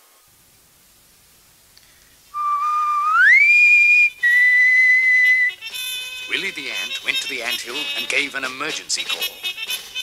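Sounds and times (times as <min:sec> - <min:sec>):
whistle blasts: 0:02.3 - 0:06.5
music: 0:05.1 - 0:10.0.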